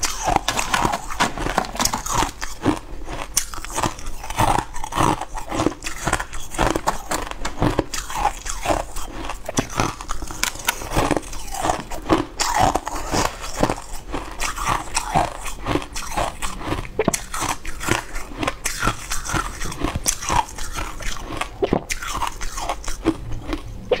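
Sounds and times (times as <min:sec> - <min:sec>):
chewing crunchy ice chunks: 0:00.0 - 0:24.0.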